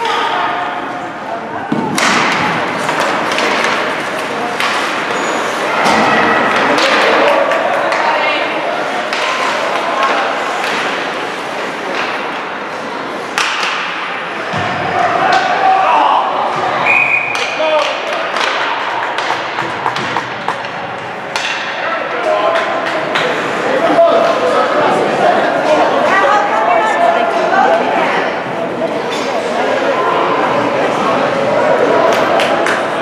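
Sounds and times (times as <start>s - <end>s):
hockey sticks clacking on puck: 1.7s - 14.1s, 17.3s - 23.5s, 32.0s - 33.0s
stick taps and knocks: 17.3s - 21.6s.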